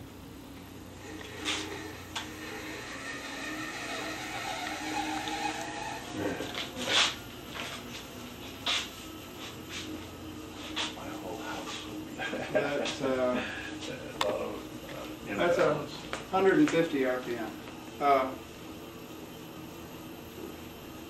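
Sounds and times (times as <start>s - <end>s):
wood lathe humming: 1.0s - 6.9s.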